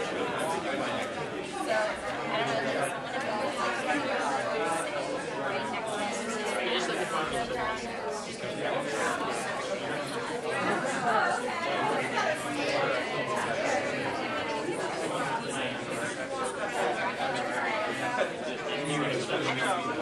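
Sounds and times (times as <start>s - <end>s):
babble of people talking: 0.0s - 20.0s.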